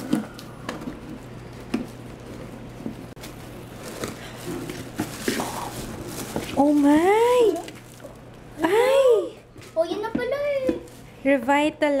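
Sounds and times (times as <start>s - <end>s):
plastic wrapping rustling: 0.0s - 8.4s.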